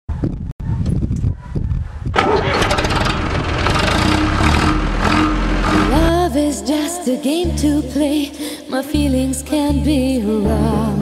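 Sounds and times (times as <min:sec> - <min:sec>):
tractor diesel engine starting: 0:02.1 - 0:06.9.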